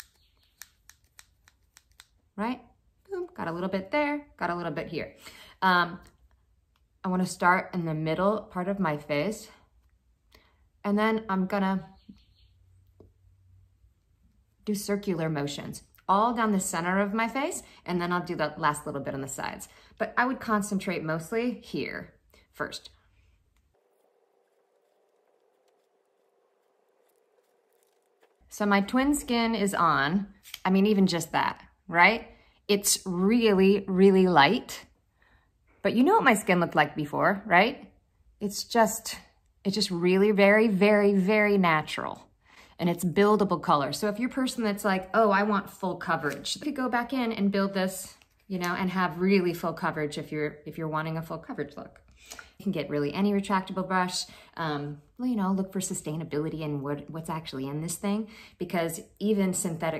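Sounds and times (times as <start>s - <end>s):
makeup brush brushing skin: 23.0s - 28.5s.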